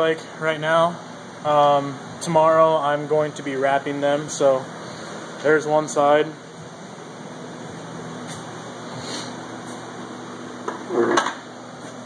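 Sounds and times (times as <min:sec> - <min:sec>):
steady background hum: 0:00.0 - 0:12.0
footsteps: 0:08.2 - 0:08.6.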